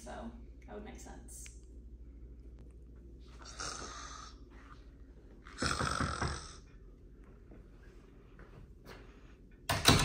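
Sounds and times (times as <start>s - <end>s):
man snoring: 3.4s - 4.4s, 5.5s - 6.6s.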